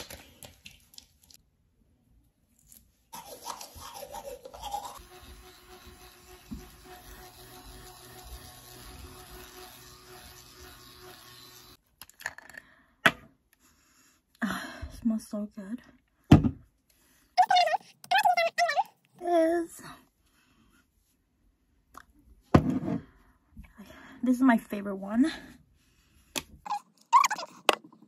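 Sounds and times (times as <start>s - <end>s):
electric cleansing brush buzzing: 3.9s - 11.8s.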